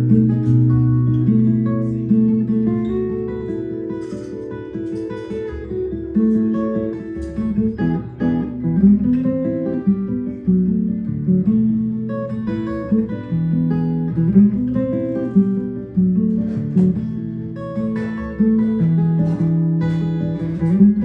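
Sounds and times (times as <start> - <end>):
fingerstyle acoustic guitar: 0.0 - 21.0.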